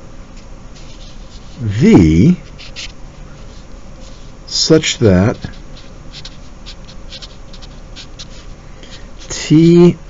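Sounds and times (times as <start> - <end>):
felt-tip marker scratching on paper: 2.4 - 9.4.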